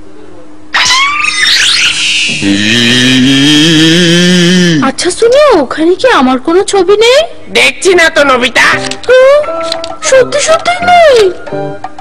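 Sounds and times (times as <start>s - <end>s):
sliding high tones: 0.7s - 4.7s.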